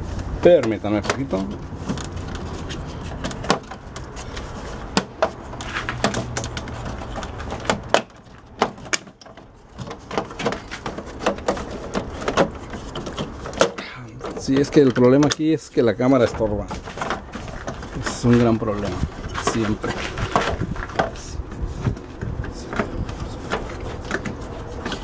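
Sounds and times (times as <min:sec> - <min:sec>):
plastic clicks and knocks: 0:04.9 - 0:15.4.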